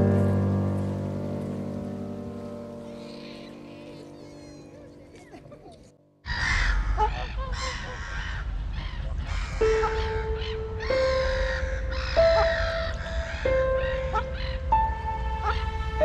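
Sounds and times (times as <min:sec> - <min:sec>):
background music held notes: 0:00.0 - 0:06.2, 0:09.6 - 0:16.0
bird calls: 0:02.4 - 0:16.0.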